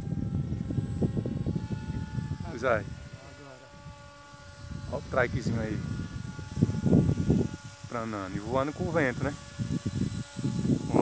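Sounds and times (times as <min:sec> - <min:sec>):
distant model motor whine: 0:00.0 - 0:11.0.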